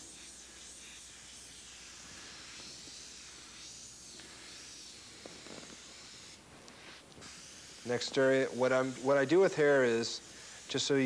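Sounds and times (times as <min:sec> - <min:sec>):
airbrush air hiss: 0:00.0 - 0:11.0.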